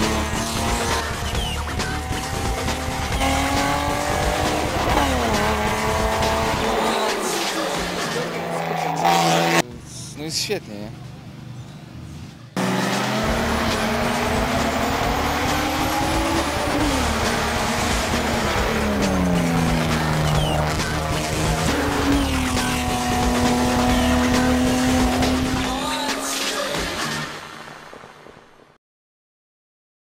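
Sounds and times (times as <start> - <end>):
race car engine at high revs: 0.0 - 9.6, 12.5 - 27.9.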